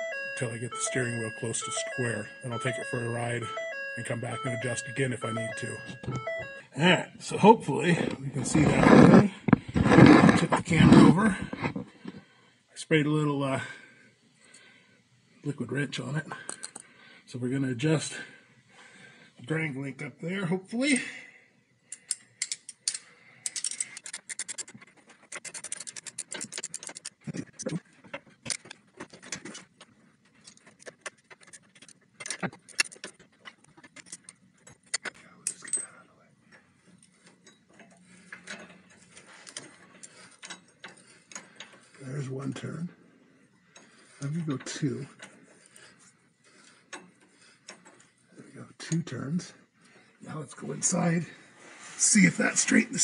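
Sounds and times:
wrench clicking on metal: 0:21.9 - 0:24.7.

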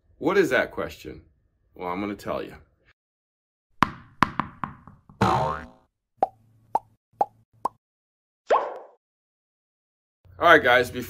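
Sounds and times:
sharp knocks: 0:03.8 - 0:05.2.

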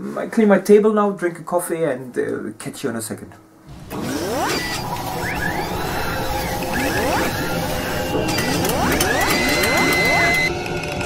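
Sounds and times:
mechanical whirring and clattering: 0:03.7 - 0:11.0.

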